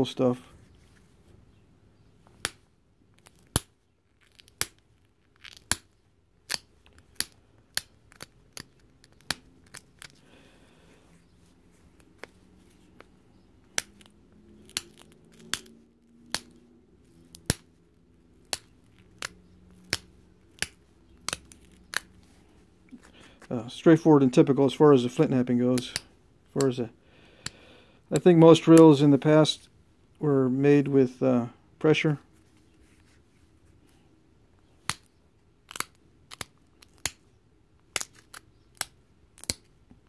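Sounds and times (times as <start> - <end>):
sharp clicks of flint flaking: 18.4 - 23.5.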